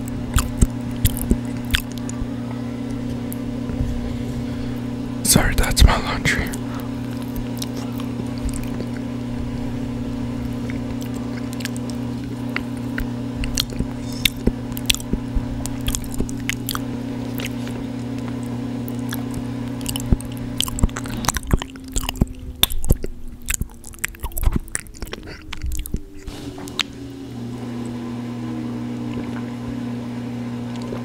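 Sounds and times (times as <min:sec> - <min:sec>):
chewing and crunching food: 0:00.0 - 0:27.0, 0:29.0 - 0:29.6, 0:30.6 - 0:31.0
laundry machine humming: 0:00.0 - 0:31.0.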